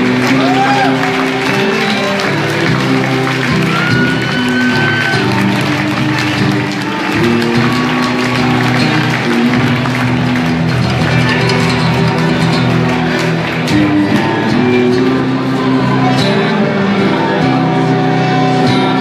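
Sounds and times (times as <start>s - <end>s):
live band playing guitars: 0.0s - 19.0s.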